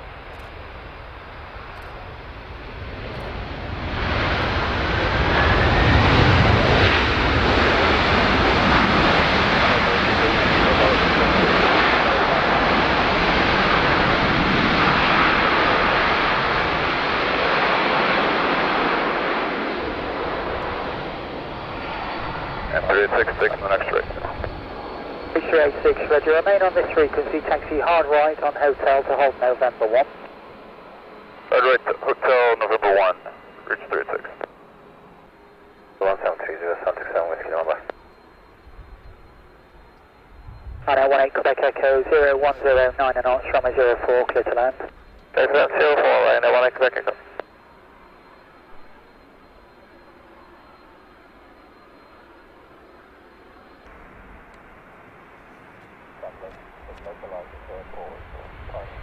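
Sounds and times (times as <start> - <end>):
jet engines of taxiing aircraft: 0.0 - 59.0
radio hiss and low rumble: 1.4 - 30.4, 31.4 - 35.0, 35.6 - 59.0
person speaking over radio: 22.7 - 24.5, 25.4 - 30.1, 31.5 - 34.5, 36.0 - 37.9, 40.9 - 47.4, 56.2 - 59.0.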